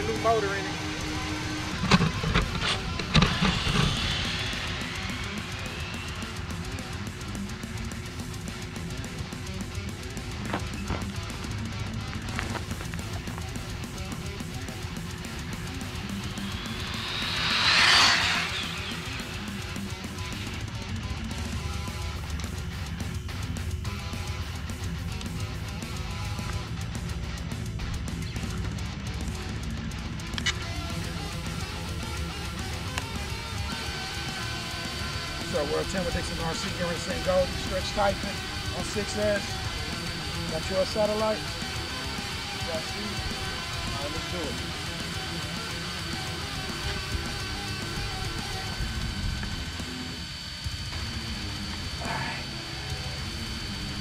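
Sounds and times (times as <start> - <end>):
rc car motor whine: 0.0 - 54.0
rock music with electric guitar: 0.0 - 54.0.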